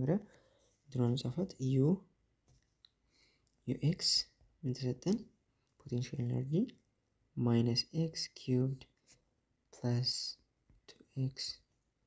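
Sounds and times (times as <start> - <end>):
man speaking: 0.0 - 2.1, 3.6 - 6.8, 7.4 - 9.0, 9.8 - 11.6.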